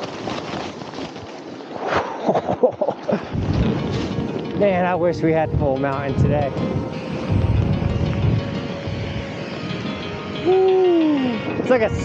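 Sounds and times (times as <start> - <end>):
snow rushing onto microphone: 0.0 - 5.0
deep rumble: 1.7 - 12.0.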